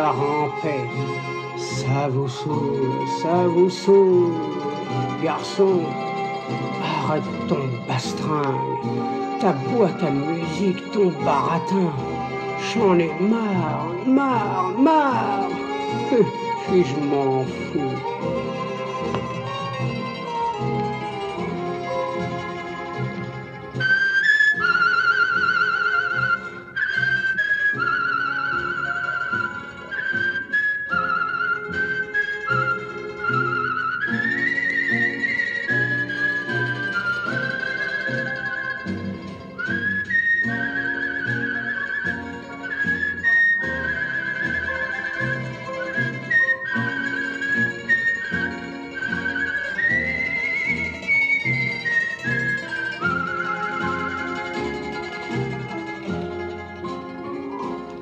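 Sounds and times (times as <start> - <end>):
person whistling a blues melody: 0.0 - 20.8, 23.7 - 58.0
band accompaniment: 0.0 - 58.0.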